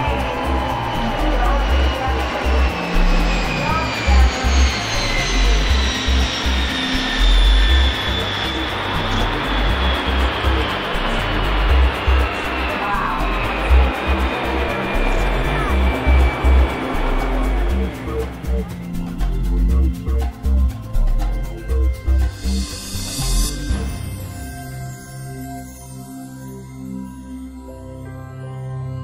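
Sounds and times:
jet engines roaring with whine: 0.0s - 24.5s.

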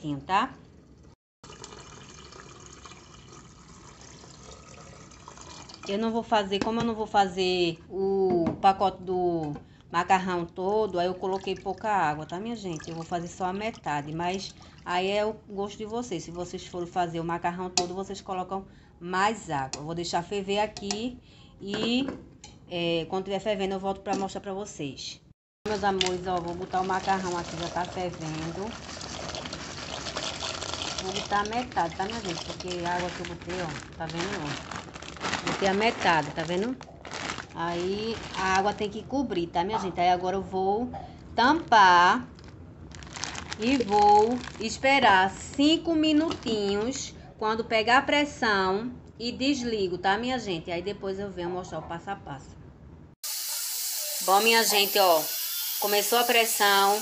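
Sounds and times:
water pouring into a pot: 1.4s - 6.0s, 12.6s - 13.4s, 26.6s - 33.7s.

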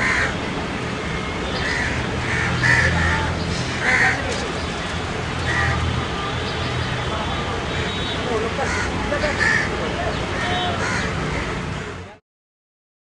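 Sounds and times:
crows cawing: 0.0s - 0.4s, 1.6s - 4.4s, 5.4s - 5.9s, 8.6s - 11.6s
distant voices: 0.0s - 12.2s.

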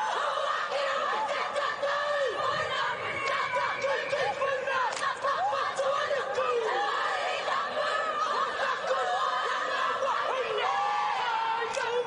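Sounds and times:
women chanting and shouting: 0.0s - 12.0s.

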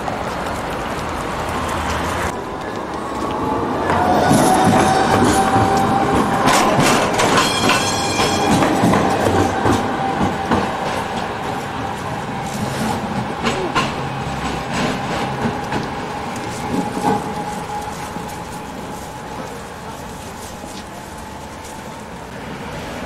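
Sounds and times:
tram wheels clicking over rails: 0.0s - 23.0s
tram whine: 2.1s - 23.0s.

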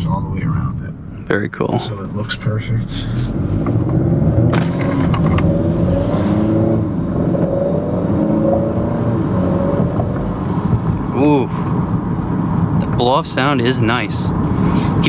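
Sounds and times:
man speaking: 0.0s - 3.3s, 12.8s - 15.0s
car engine accelerating: 0.0s - 13.4s.

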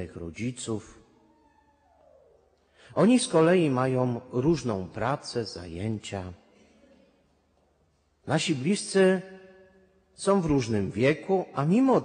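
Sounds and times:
man speaking: 0.0s - 1.0s, 2.8s - 6.5s, 8.2s - 9.4s, 10.2s - 12.0s.

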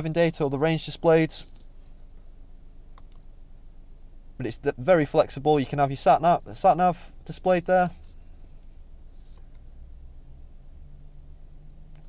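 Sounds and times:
soft rustle: 1.0s - 2.6s, 5.6s - 10.0s.

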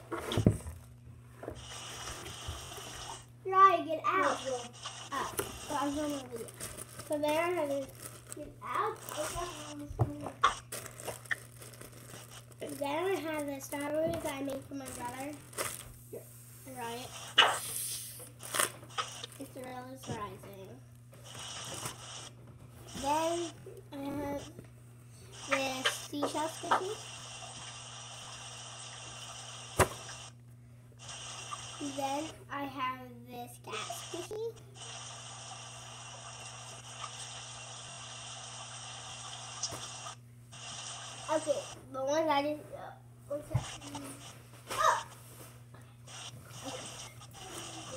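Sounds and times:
background hiss with low hum: 0.0s - 47.9s
plastic bag crinkling: 5.2s - 16.0s, 18.4s - 19.7s.

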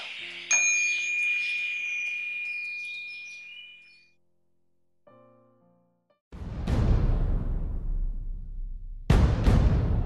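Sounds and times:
small bell ringing: 0.5s - 4.1s.

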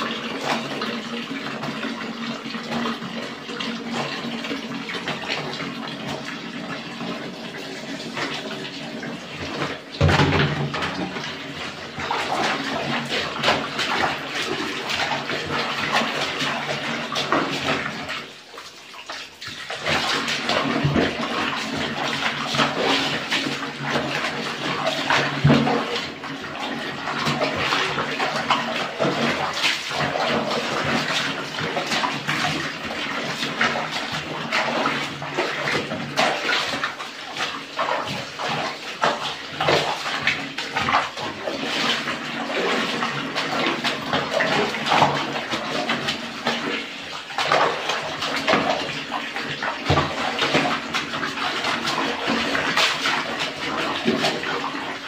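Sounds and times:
water sloshing in plastic basin: 0.0s - 55.0s
wet cloth squelching: 10.7s - 55.0s.

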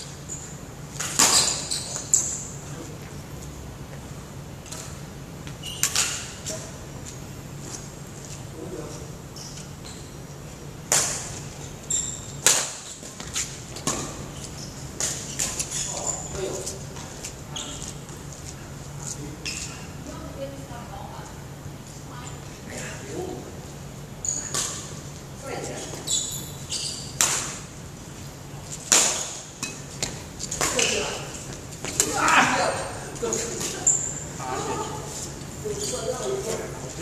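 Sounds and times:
racket hitting shuttlecock: 1.0s - 1.7s, 12.4s - 13.2s, 27.2s - 27.7s, 28.9s - 31.0s.

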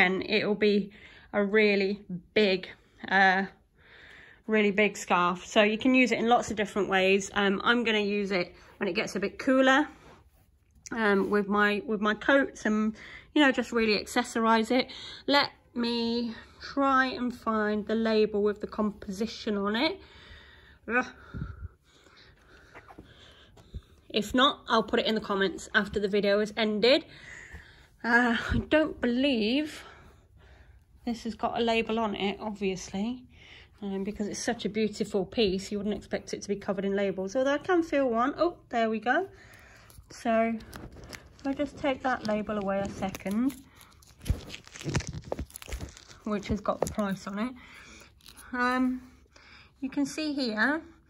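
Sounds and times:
plastic sleeve crinkling: 39.7s - 48.8s.

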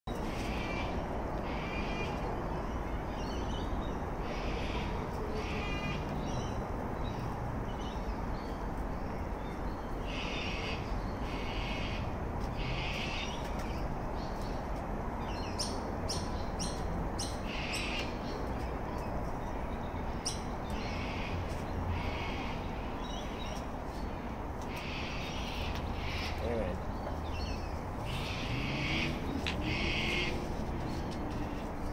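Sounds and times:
birds calling: 0.1s - 31.9s.

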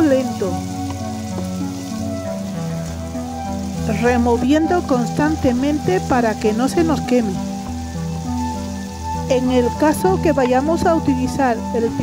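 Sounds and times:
onion and garlic sizzling in oil: 0.0s - 12.0s
soft background music: 0.0s - 12.0s.

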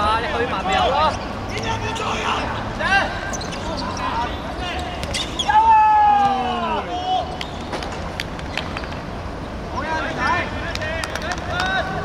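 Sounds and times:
players shouting: 0.0s - 7.5s, 9.7s - 12.0s.

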